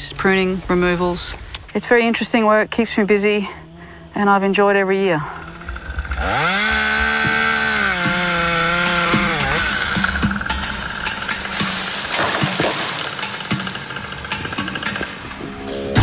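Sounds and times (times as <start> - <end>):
chainsaw cutting a branch: 5.2 - 16.0.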